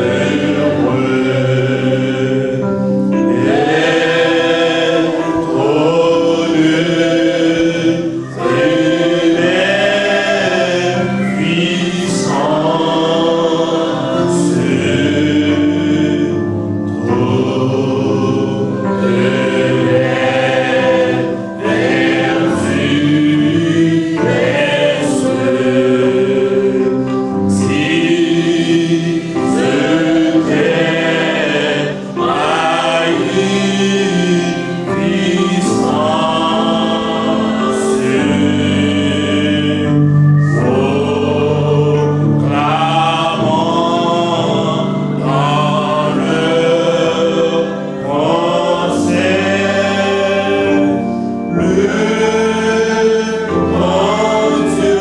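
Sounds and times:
held accompaniment notes: 0.0s - 55.0s
man singing gospel song: 0.0s - 55.0s.

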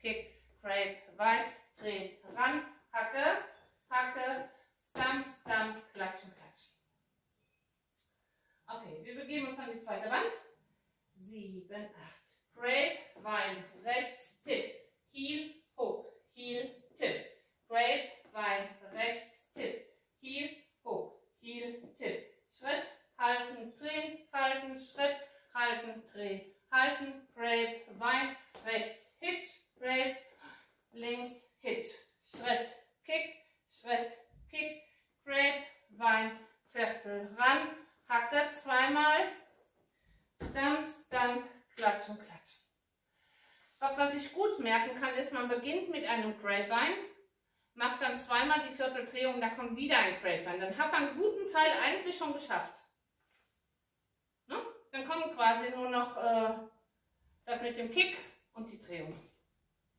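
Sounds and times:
woman speaking syllables: 0.0s - 6.6s, 8.7s - 10.4s, 11.2s - 34.7s, 35.3s - 39.4s.

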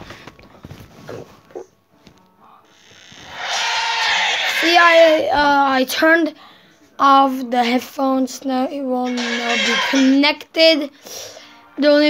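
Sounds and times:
music from phone loudspeaker: 9.1s - 10.2s.

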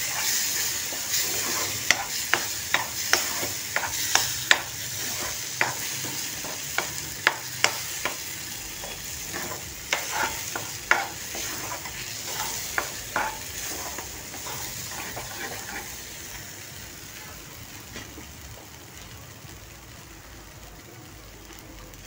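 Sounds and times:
paste sizzling: 0.0s - 17.9s
spoon scraping steel pan: 8.8s - 15.9s.

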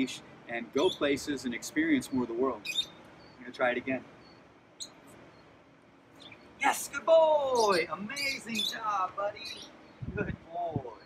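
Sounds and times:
faint high bird chirps: 0.8s - 11.0s.

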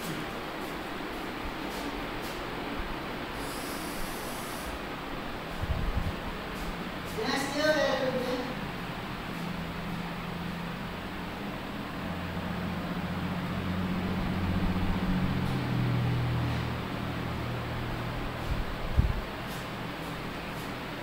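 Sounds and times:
low mechanical hum: 0.0s - 21.0s
background hiss: 3.3s - 10.7s.

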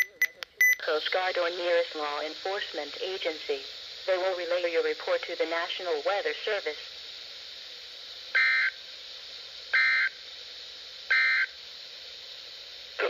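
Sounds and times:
faint radio static: 0.0s - 13.0s.

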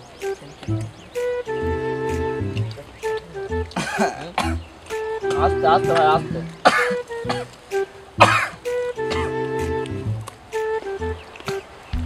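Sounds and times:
background music with looping beat: 0.0s - 12.0s
man coughing and clearing throat: 3.8s - 4.7s, 5.9s - 7.5s, 8.2s - 9.4s.

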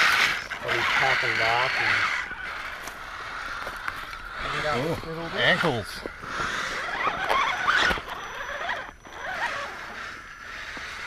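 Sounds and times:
toy car drivetrain whine: 0.0s - 11.0s.

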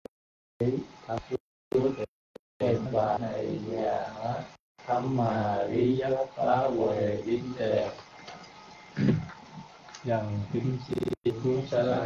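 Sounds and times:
voice chat line hiss: 10.0s - 12.0s.

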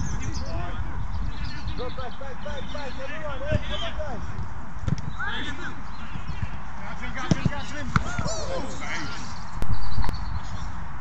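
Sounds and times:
footballers shouting: 5.1s - 9.4s
football kick thuds: 7.2s - 8.3s.

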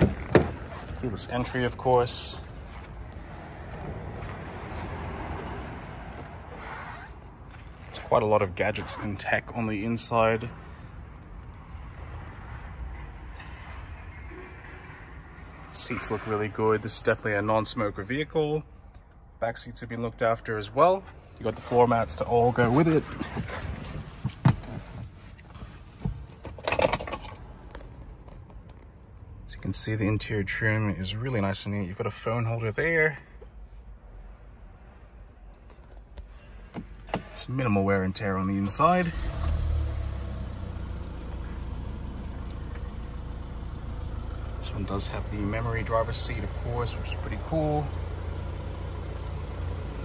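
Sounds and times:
handling rustling in car: 0.0s - 9.2s, 21.4s - 28.0s.

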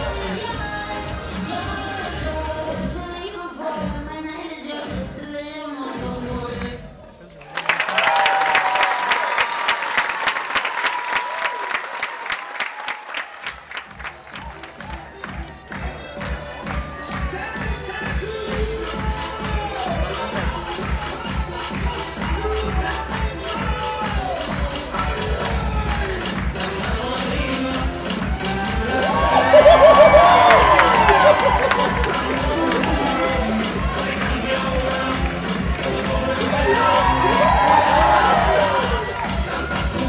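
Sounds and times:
crowd cheering: 7.4s - 16.2s, 28.3s - 40.0s
audience applause: 7.4s - 17.7s, 28.2s - 40.0s
dance music with bass beat: 14.0s - 40.0s.

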